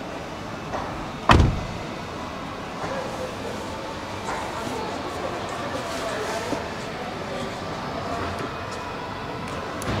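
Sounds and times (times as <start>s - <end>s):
car door shutting: 1.2s - 1.8s.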